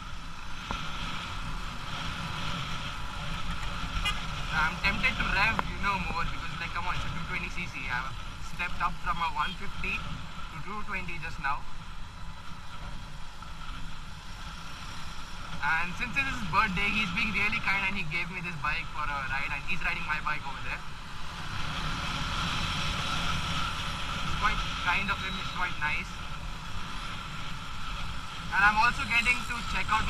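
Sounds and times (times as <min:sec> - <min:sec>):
road and wind noise: 0:00.0 - 0:30.0.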